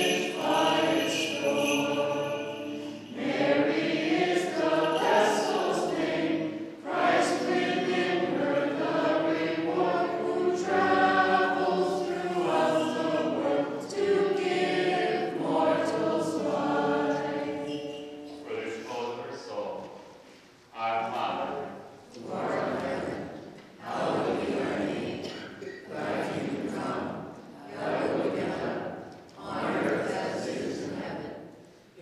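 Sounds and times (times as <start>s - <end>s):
group singing a chant: 0.0s - 19.2s, 22.1s - 32.0s.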